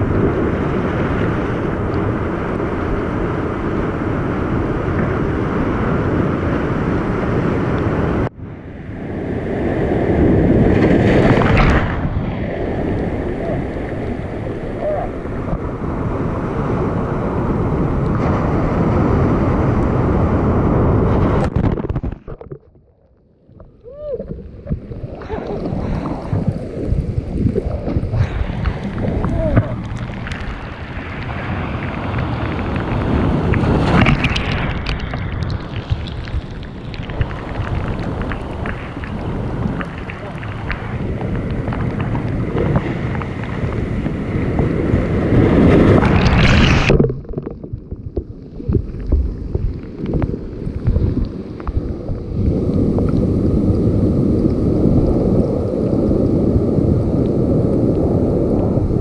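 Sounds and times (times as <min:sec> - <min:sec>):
wind buffeting microphone: 0:00.0 - 0:22.6, 0:23.4 - 0:59.0
surf rushing: 0:00.0 - 0:22.8, 0:23.6 - 0:59.0.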